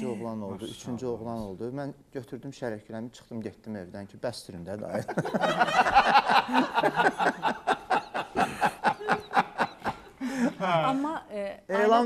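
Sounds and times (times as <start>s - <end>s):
people laughing: 5.0s - 11.1s.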